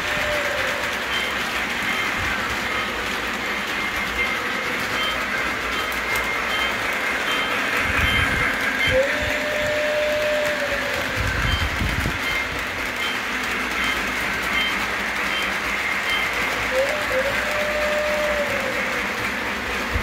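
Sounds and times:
model train rolling on track: 0.0 - 20.0.

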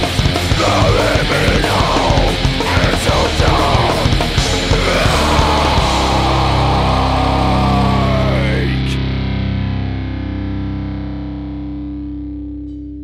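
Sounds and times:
heavy distorted band music: 0.0 - 12.6
distorted electric guitar chord ringing: 0.1 - 13.0.

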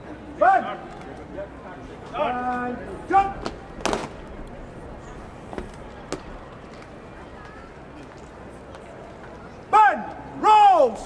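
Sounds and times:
person shouting a command: 9.7 - 11.0.

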